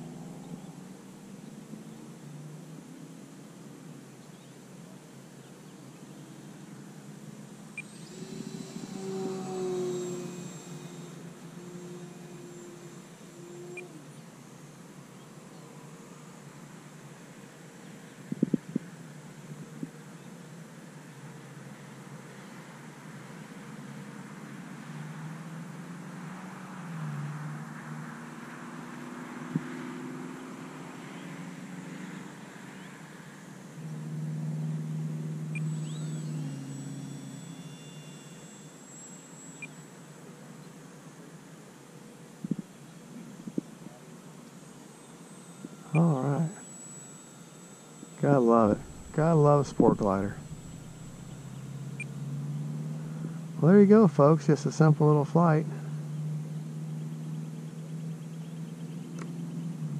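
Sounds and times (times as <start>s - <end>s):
distant motor drone: 0.0s - 59.9s.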